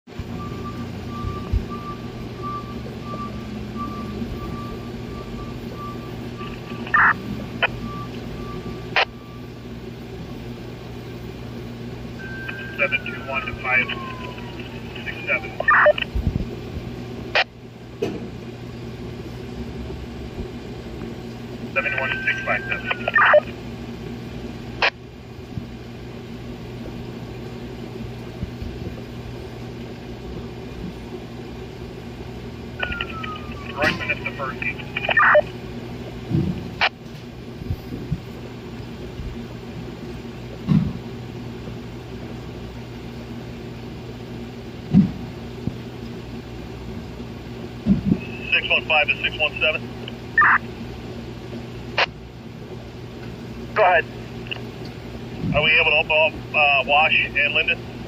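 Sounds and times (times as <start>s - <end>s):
garbled radio transmissions: 5.6s - 7.9s, 12.2s - 16.2s, 21.6s - 23.6s, 32.8s - 35.6s, 48.2s - 50.7s, 53.7s - 54.7s, 55.5s - 57.8s
radio background hiss and hum: 5.6s - 7.9s, 8.9s - 9.2s, 12.2s - 18.1s, 20.4s - 23.7s, 24.7s - 25.0s, 32.8s - 35.8s, 47.9s - 52.8s, 53.5s - 58.0s
radio squelch click: 12.5s - 16.1s, 32.8s - 35.5s.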